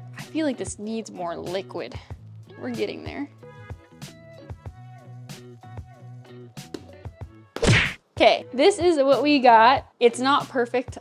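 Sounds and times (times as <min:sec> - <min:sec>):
instrumental music: 0:02.4 - 0:07.6.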